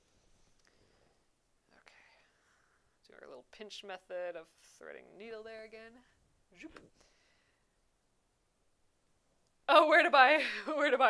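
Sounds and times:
faint whisper or breath: 0.3s - 3.0s.

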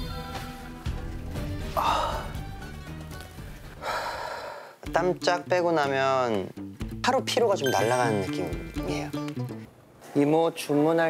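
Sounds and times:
soft background music: 0.0s - 4.1s, 4.8s - 9.8s
man sighing: 1.7s - 2.5s.

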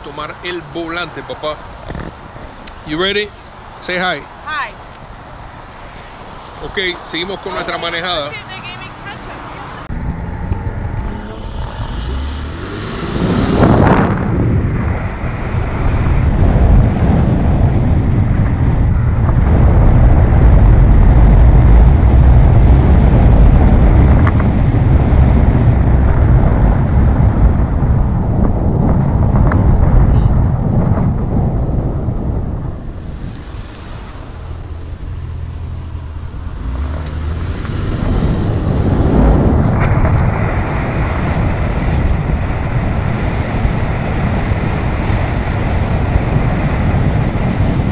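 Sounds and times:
car engine: 0.0s - 47.6s
road noise: 0.0s - 47.9s
wind buffeting microphone: 0.0s - 47.9s.

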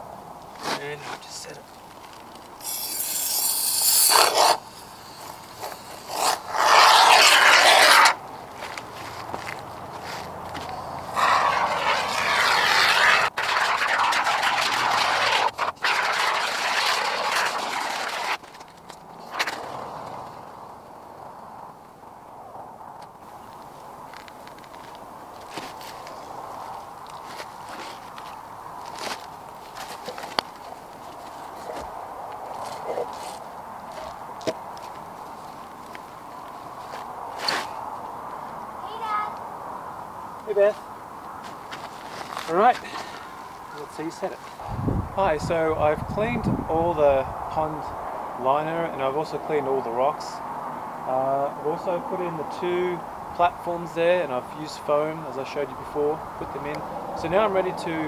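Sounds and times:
aerosol can hissing: 2.6s - 8.1s.

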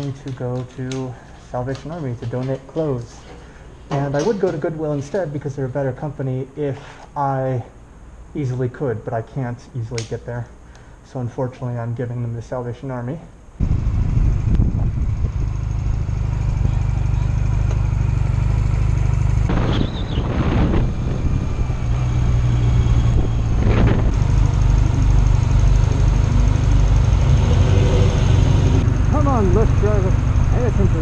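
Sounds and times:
motorcycle engine running: 13.6s - 31.0s
road noise: 13.6s - 31.0s.

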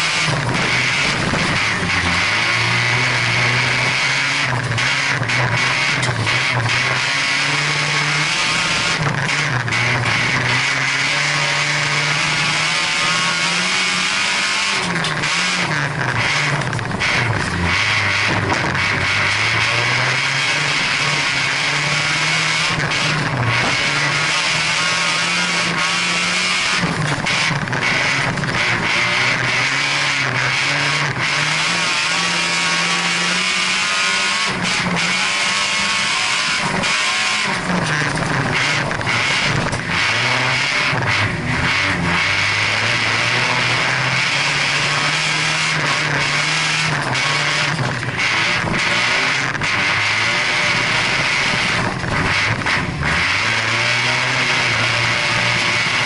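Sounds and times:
race car engine revving: 0.0s - 56.0s
rushing noise of car at speed: 0.0s - 56.0s.

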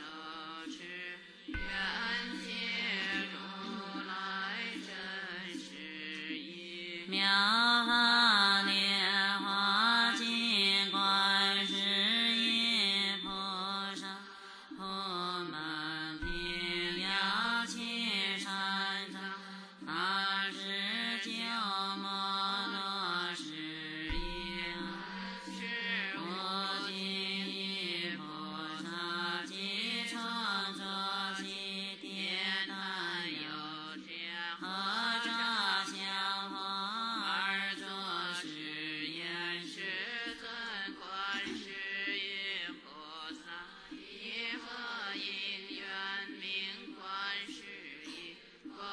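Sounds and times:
chanting to slow melody: 0.0s - 48.9s.

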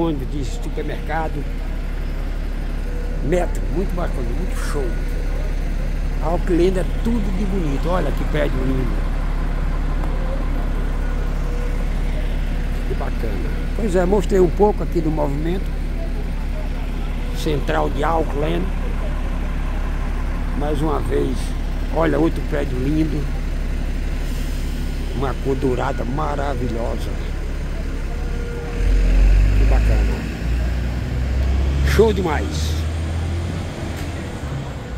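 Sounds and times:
engine hum: 0.0s - 34.9s
low rumble of street traffic: 0.0s - 34.9s
road noise: 0.0s - 34.9s.

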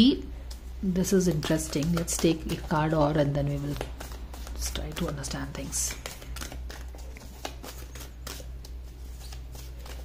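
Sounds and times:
steady low hum: 0.0s - 10.0s
cards being shuffled: 1.3s - 10.0s.

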